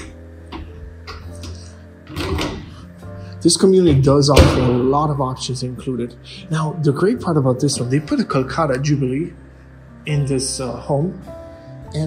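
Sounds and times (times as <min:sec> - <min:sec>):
background music: 0:00.0 - 0:12.0
microwave door clunk: 0:02.1 - 0:02.8, 0:03.9 - 0:04.9.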